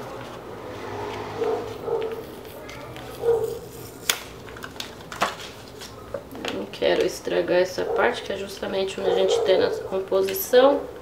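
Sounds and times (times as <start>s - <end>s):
soft rubbing and handling noise: 0.0s - 7.1s.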